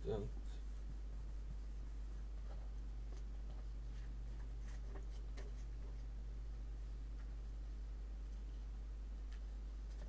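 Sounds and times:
low hum: 0.0s - 10.0s
paper rubbing by hand: 0.2s - 2.3s.

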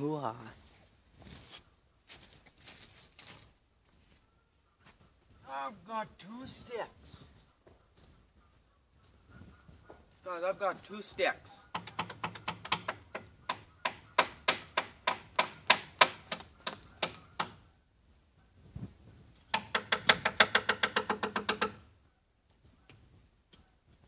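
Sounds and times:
wooden sticks clacking: 11.6s - 17.6s, 19.4s - 21.8s.

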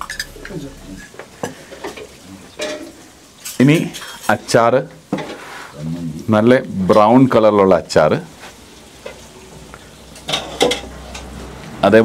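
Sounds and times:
steady low hiss: 0.0s - 10.3s.

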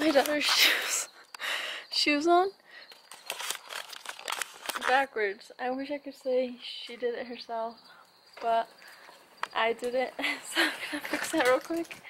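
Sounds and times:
woman speaking: 0.0s - 1.1s, 1.9s - 2.6s, 4.8s - 7.8s, 8.4s - 8.8s, 9.5s - 12.0s
rustling: 2.9s - 5.0s.

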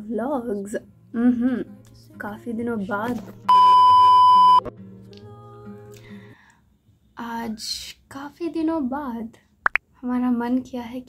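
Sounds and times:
loud steady test tone beep: 3.5s - 4.6s.

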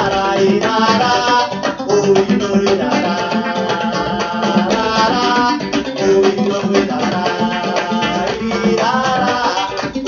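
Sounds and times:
song from vinyl record on loudspeaker: 0.0s - 10.0s.

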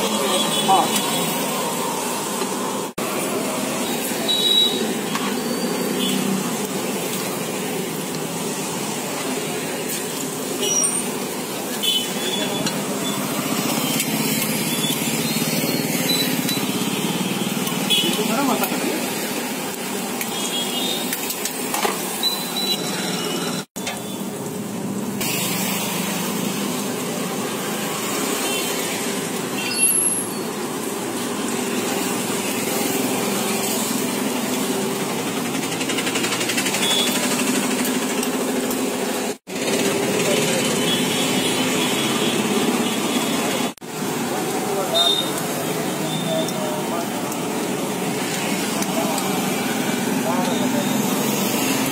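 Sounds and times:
batter sizzling in hot oil: 0.0s - 51.9s
street traffic: 0.0s - 51.9s.

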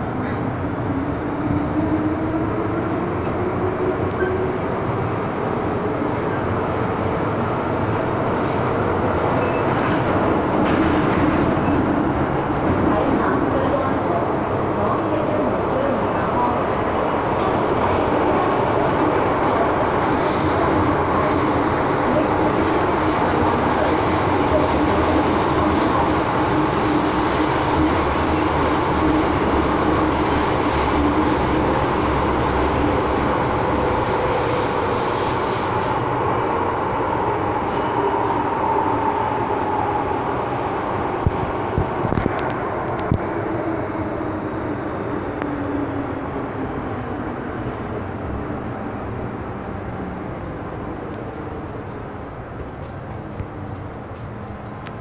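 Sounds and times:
metro train rumbling in tunnel: 0.0s - 55.0s.

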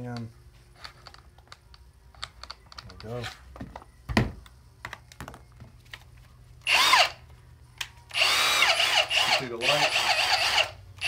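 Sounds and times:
drill motor whine: 6.7s - 7.1s, 8.1s - 10.8s.

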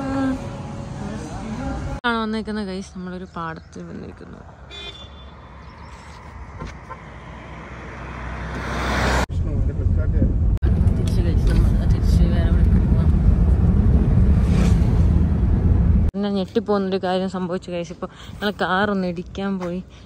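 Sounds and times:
roadside traffic noise: 0.0s - 20.0s.

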